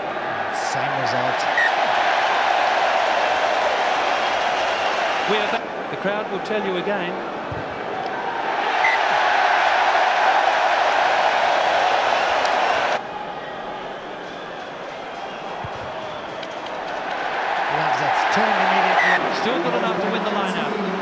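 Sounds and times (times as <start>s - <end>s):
crowd noise: 0.0s - 21.0s
stadium crowd cheering: 0.0s - 21.0s.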